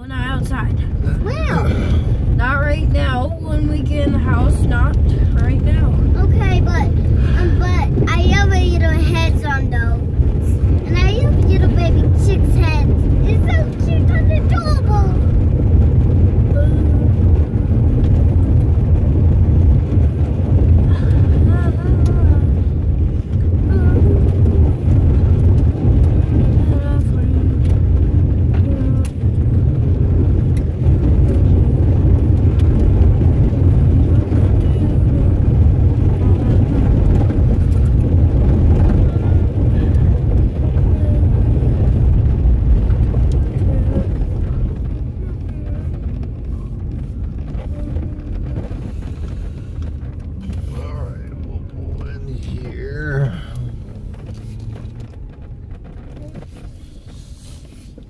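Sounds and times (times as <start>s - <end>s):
car driving on gravel: 0.0s - 58.0s.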